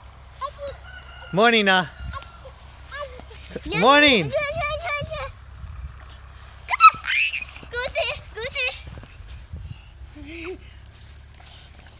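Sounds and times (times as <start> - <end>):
high-pitched cries: 6.7 - 9.0.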